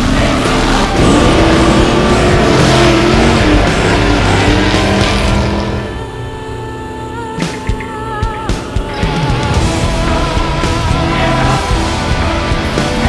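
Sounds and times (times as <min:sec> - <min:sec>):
race engine revving: 0:00.0 - 0:07.1, 0:08.8 - 0:13.0
heavy rock music: 0:00.0 - 0:13.0.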